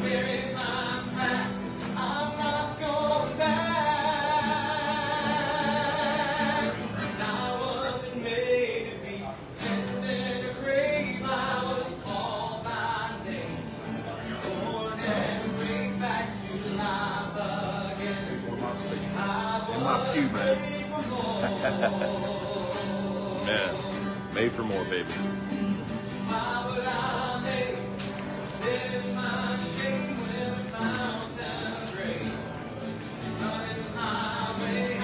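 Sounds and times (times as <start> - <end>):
acoustic guitar: 0.0 - 35.0
person singing: 14.4 - 24.6.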